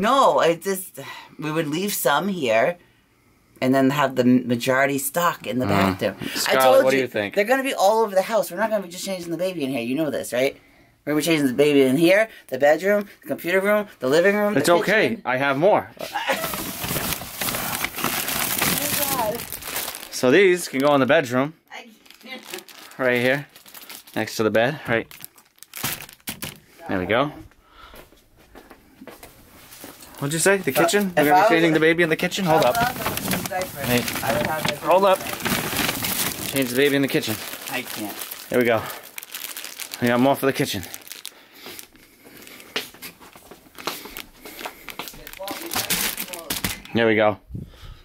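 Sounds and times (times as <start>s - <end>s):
person speaking: 5.5s - 10.6s, 18.6s - 20.8s, 30.1s - 39.1s, 45.0s - 47.1s
plastic packs crinkling: 16.3s - 21.0s, 21.9s - 26.8s, 29.9s - 47.0s.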